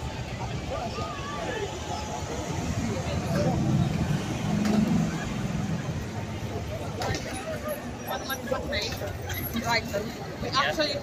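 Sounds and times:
bus and taxi engines passing: 0:00.0 - 0:11.0.

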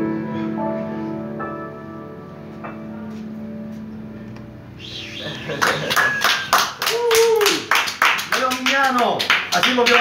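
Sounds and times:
audience clapping: 0:05.4 - 0:10.0.

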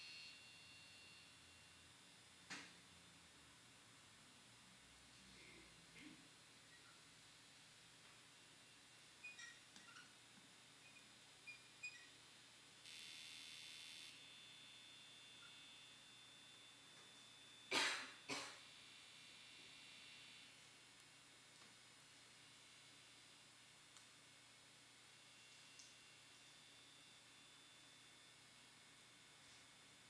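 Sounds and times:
electronic hiss: 0:00.0 - 0:30.0
faint high ringing tones: 0:00.0 - 0:30.0
small high electronic blips: 0:09.2 - 0:15.8.

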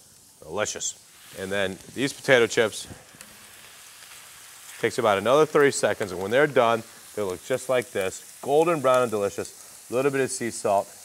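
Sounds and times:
potato slices sizzling in hot oil: 0:00.0 - 0:11.0.

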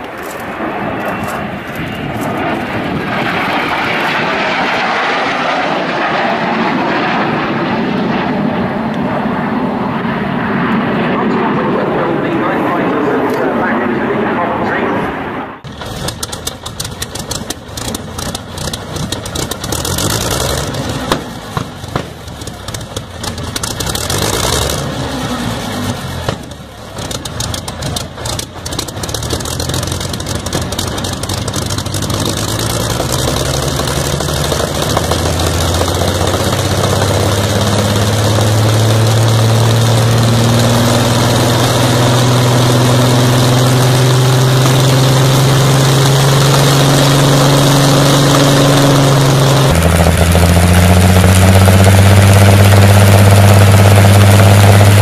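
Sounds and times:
aero engine running: 0:00.0 - 0:55.0
engine popping: 0:15.6 - 0:55.0.

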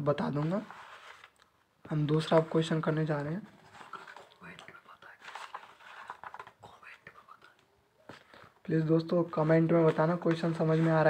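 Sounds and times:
paper page rustling: 0:00.2 - 0:01.4, 0:02.1 - 0:07.4, 0:09.1 - 0:11.0.

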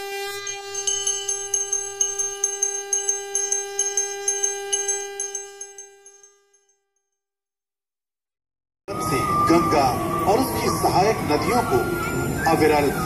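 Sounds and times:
conch shell blown: 0:00.0 - 0:06.8
small bell rung rapidly: 0:00.4 - 0:07.1.

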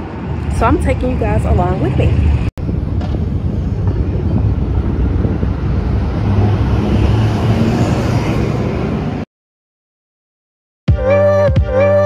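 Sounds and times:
low rumble of traffic: 0:00.0 - 0:09.3.

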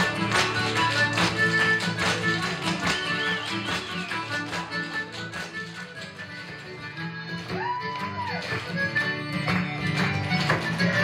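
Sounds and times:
acoustic guitars playing dance music: 0:00.0 - 0:11.0.

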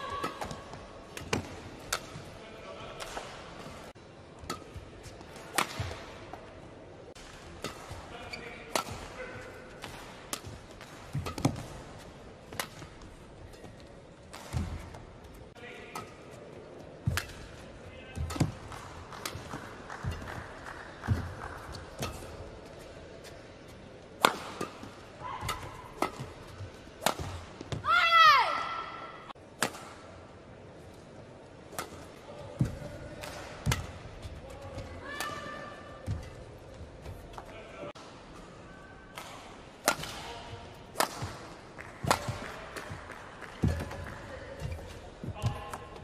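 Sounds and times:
racket striking shuttlecock: 0:00.2 - 0:02.2, 0:04.4 - 0:06.0, 0:07.6 - 0:08.0, 0:08.6 - 0:11.8, 0:12.5 - 0:13.0, 0:21.1 - 0:22.5, 0:24.2 - 0:27.9, 0:29.6 - 0:30.0, 0:31.7 - 0:34.0, 0:39.1 - 0:44.0.

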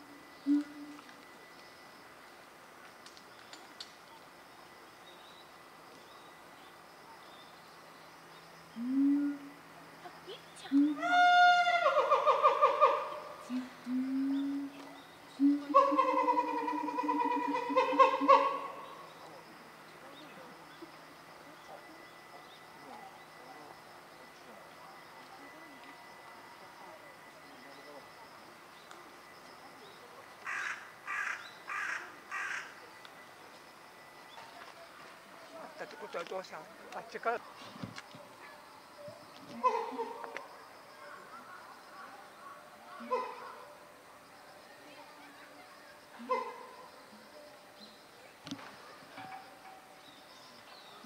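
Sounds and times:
drawn-out pitched vocal calls: 0:07.1 - 0:34.3
crow cawing: 0:30.4 - 0:32.7.

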